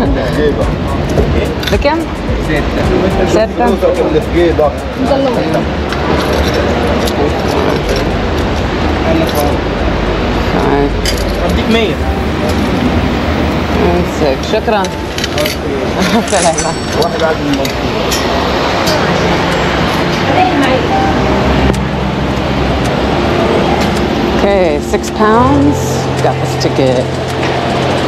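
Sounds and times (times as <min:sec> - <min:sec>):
people talking: 0:00.0 - 0:08.4, 0:09.0 - 0:09.6, 0:10.5 - 0:21.9, 0:22.6 - 0:28.0
station hall hubbub: 0:00.0 - 0:28.0.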